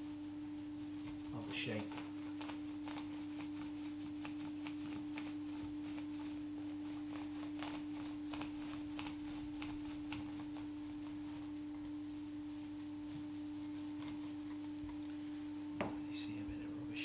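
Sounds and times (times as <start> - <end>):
paint roller strokes: 0.0 - 16.4
steady hum: 0.0 - 17.0.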